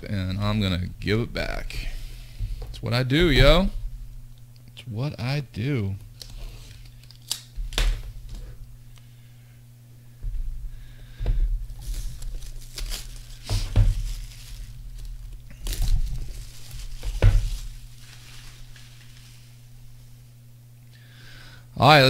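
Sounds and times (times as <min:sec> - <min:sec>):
shrink-wrap crinkling and tearing: 0:06.2 - 0:07.9, 0:11.7 - 0:19.6.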